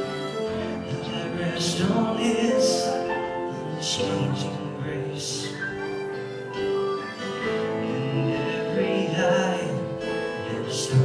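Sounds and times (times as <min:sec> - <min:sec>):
band playing slow worship song: 0:00.0 - 0:11.0.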